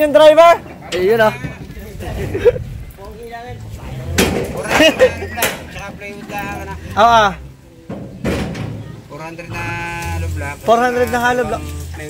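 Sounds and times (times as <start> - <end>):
indistinct talking: 0.0 - 12.0
sharp knocks: 7.9 - 8.9.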